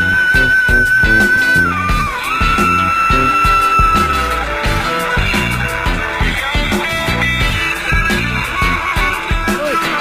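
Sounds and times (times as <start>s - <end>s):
loud music with heavy beat: 0.0s - 10.0s.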